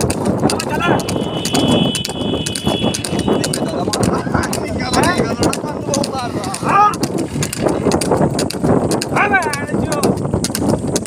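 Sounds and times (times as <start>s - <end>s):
hooves trotting on asphalt: 0.0s - 11.0s
short call: 0.9s - 3.7s.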